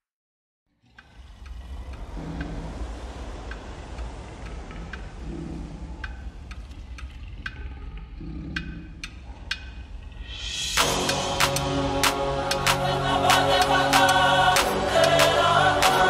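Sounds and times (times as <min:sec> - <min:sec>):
low background rumble: 0:00.7 - 0:16.0.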